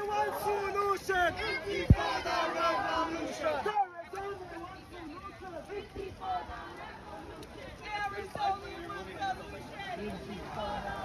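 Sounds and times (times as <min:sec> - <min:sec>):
crowd chanting and shouting: 0:00.0 - 0:11.0.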